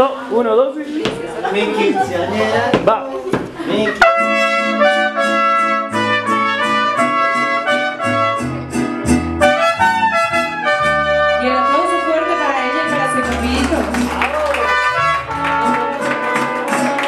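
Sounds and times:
mariachi band playing: 0.8 - 17.0
trumpets playing melody: 4.0 - 13.8, 14.4 - 17.0.

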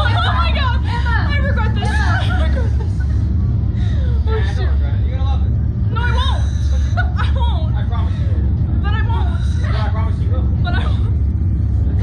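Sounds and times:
young women laughing and exclaiming: 0.0 - 4.8, 5.9 - 8.0
loud steady low rumble: 0.0 - 12.0.

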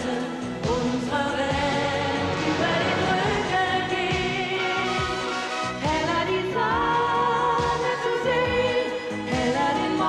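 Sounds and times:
person singing: 0.0 - 10.0.

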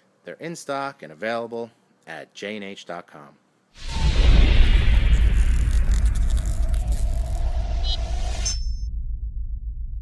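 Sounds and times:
hissing fizz: 3.8 - 7.8
deep boom and rumble: 3.8 - 10.0.

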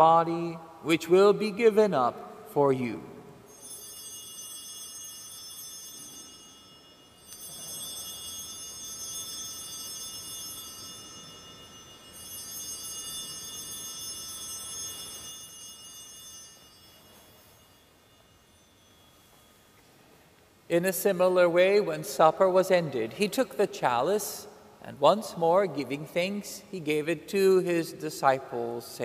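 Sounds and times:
altar bells ringing: 3.4 - 23.3.

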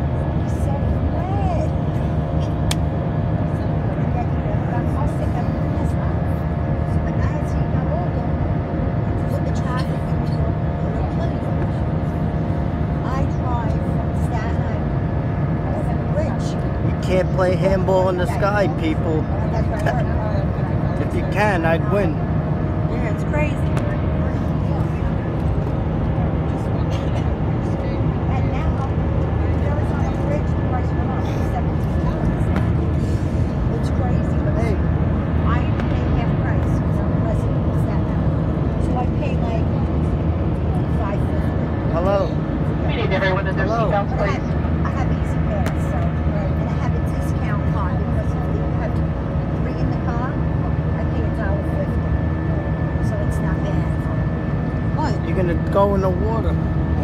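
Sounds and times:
airliner cabin drone: 0.0 - 57.0
indistinct passenger voices: 0.0 - 57.0.

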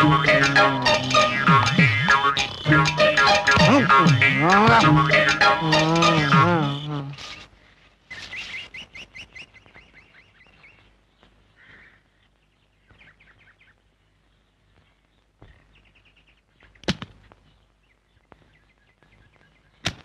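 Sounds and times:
birds chirping: 0.0 - 7.5, 8.1 - 19.9.

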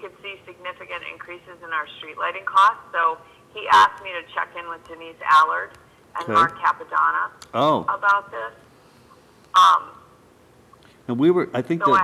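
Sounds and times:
man saying um: 6.2 - 6.6, 7.6 - 7.9, 11.1 - 12.0.

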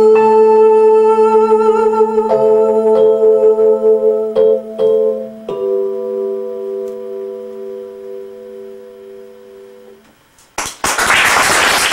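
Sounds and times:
electronic keyboard chord: 0.0 - 10.2
audience applause: 10.6 - 11.9.

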